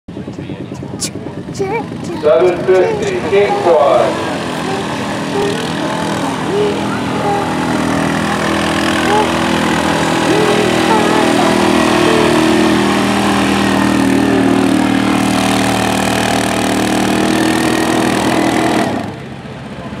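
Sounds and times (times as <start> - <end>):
atv engine running hard: 0.1 - 20.0.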